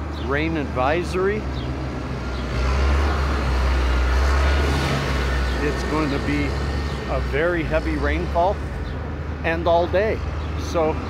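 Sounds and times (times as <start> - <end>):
diesel engine driving past: 0.0 - 11.0.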